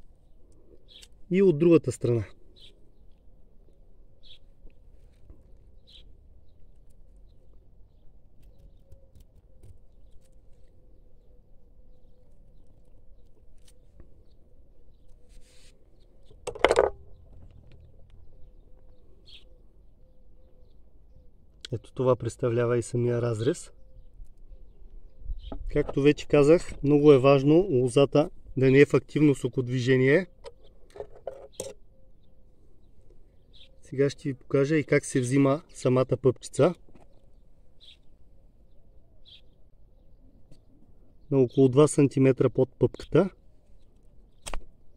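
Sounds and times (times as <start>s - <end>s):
faint bird chirps: 0.0s - 1.5s, 2.1s - 16.4s, 17.0s - 26.3s, 28.6s - 41.8s
low outdoor background: 0.0s - 44.9s.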